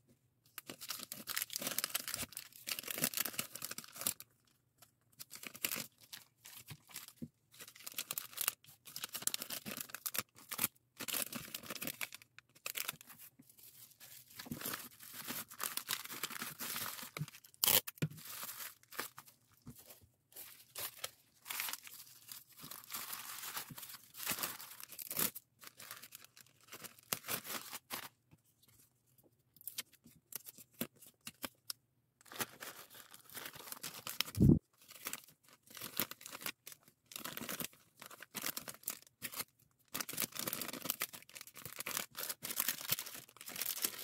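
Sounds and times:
bubble wrap rustling: 0.6 - 4.3, 5.2 - 28.2, 32.2 - 44.0
plastic bags crinkling: 14.0 - 27.9, 40.0 - 44.0.

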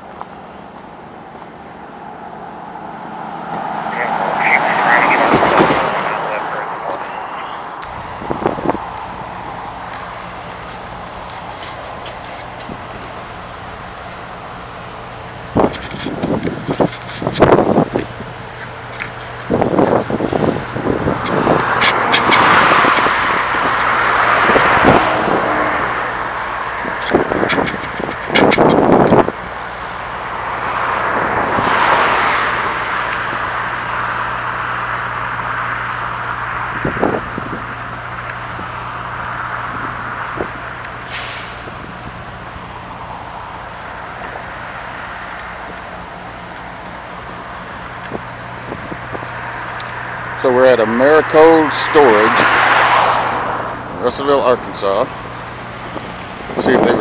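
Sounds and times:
vehicles passing by: 0.0 - 57.0.

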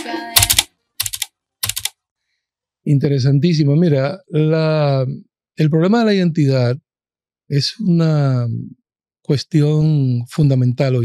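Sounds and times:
typing on computer keyboard: 0.4 - 2.0.

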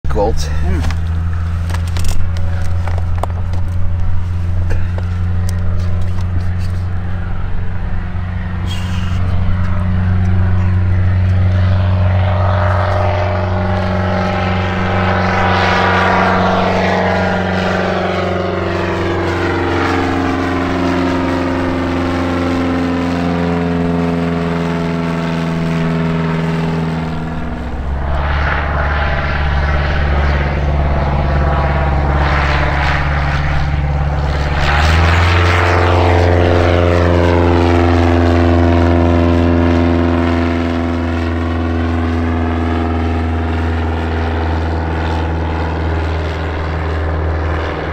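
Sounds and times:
propeller aircraft engine drone: 0.0 - 47.9.

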